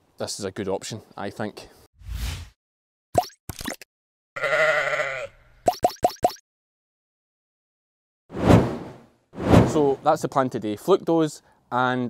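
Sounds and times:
sheep bleating: 0:04.4 - 0:05.4
whoosh: 0:08.3 - 0:10.1.

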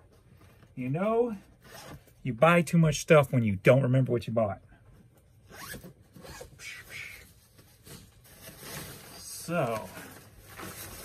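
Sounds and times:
zipper rasping: 0:05.5 - 0:06.5.

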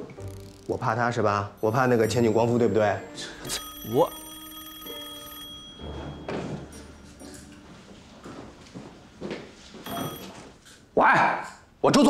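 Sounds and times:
telephone bell ringing: 0:01.6 - 0:07.8, 0:09.8 - 0:10.6
soft footsteps: 0:05.8 - 0:10.6.

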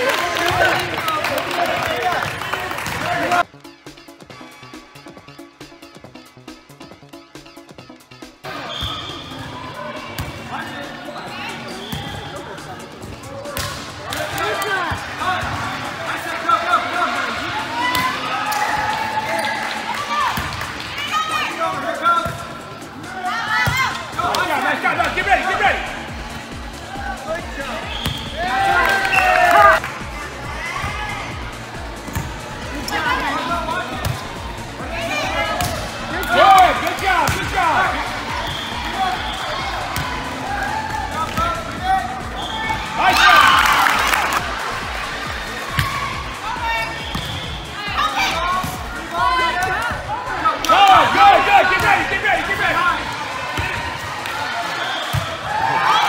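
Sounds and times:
background music with low beat: 0:21.7 - 0:52.8
volleyball thumps: 0:27.9 - 0:28.4, 0:32.0 - 0:32.5, 0:35.4 - 0:37.6, 0:47.0 - 0:47.7.

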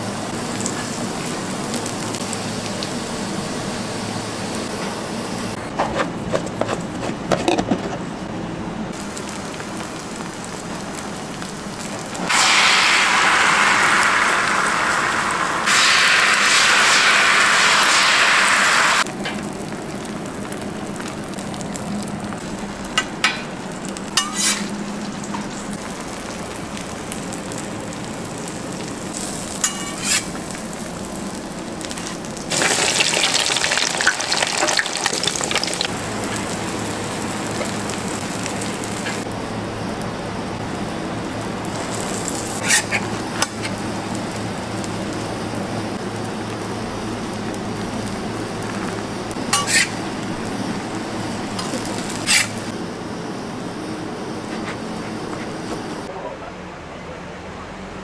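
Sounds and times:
eggs sizzling on a griddle: 0:09.0 - 0:39.4, 0:40.6 - 0:52.7.

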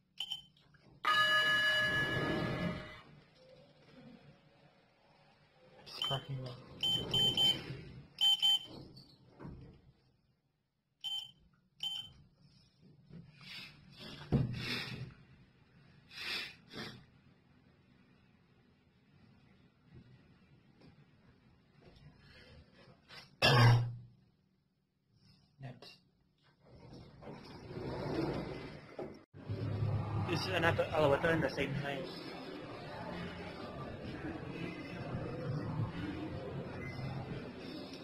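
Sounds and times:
elevator electronic beeps: 0:01.1 - 0:03.0, 0:05.9 - 0:08.8, 0:11.0 - 0:12.1
elevator doors sliding open: 0:01.4 - 0:03.1, 0:06.7 - 0:09.7, 0:26.7 - 0:30.6.

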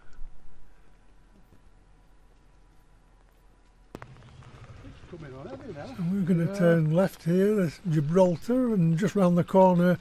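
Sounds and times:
low steady background sound: 0:00.0 - 0:10.0.

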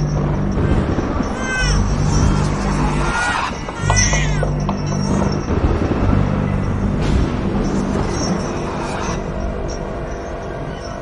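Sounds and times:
rumbling wash of noise: 0:00.0 - 0:10.7
low steady drone: 0:00.0 - 0:11.0.

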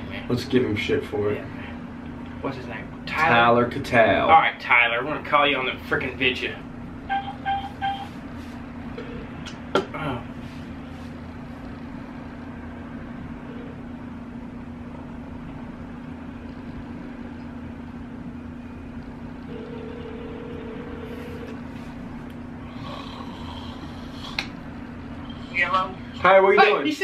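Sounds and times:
steady low hum: 0:00.0 - 0:27.0
phone ringback tone: 0:07.1 - 0:08.2, 0:19.5 - 0:21.6.

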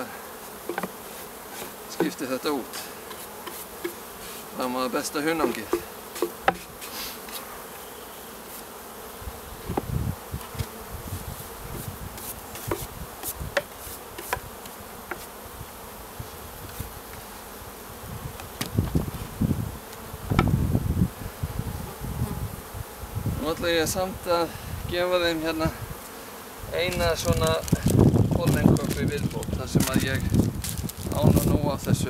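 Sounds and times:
bees buzzing: 0:00.0 - 0:32.0.

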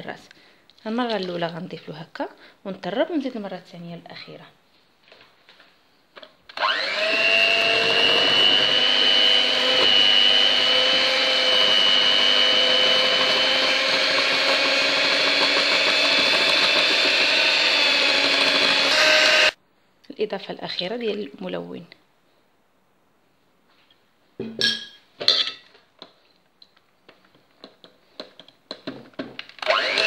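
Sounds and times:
electric hand mixer whine: 0:06.5 - 0:19.6, 0:29.6 - 0:30.0.

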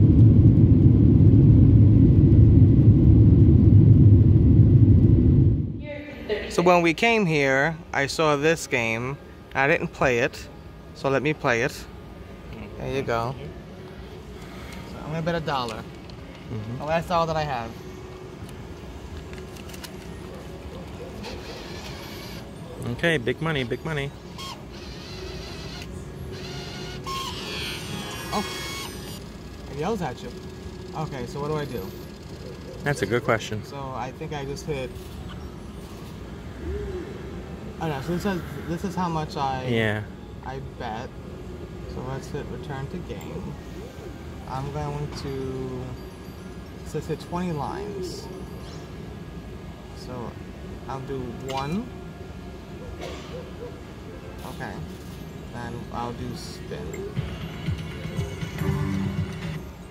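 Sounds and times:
steady low hum: 0:00.0 - 0:59.9
slot machine electronic beeps: 0:26.4 - 0:30.0, 0:56.8 - 0:59.9
slot machine chimes: 0:56.9 - 0:59.9.

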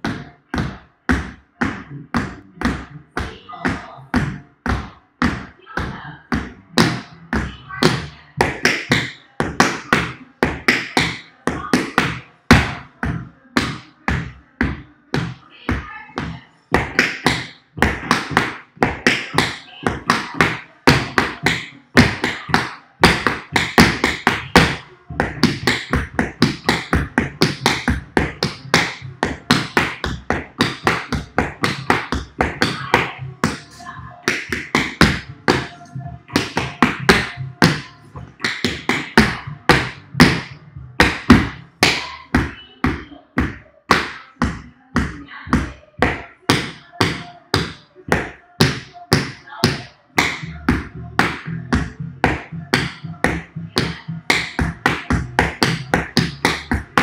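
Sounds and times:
tap shoes on wooden board: 0:00.0 - 0:12.8, 0:13.6 - 0:33.6, 0:34.2 - 0:57.0.

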